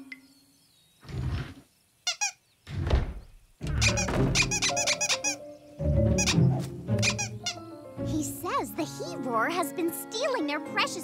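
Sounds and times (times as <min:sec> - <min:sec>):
dull thud: 0:02.7 - 0:04.8
cartoon creatures squeaking: 0:03.6 - 0:05.4, 0:06.1 - 0:07.6
background music: 0:03.6 - 0:11.0.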